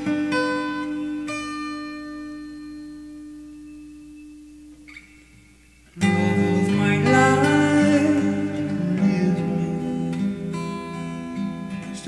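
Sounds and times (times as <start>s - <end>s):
acoustic guitar note ringing: 0.0s - 12.0s.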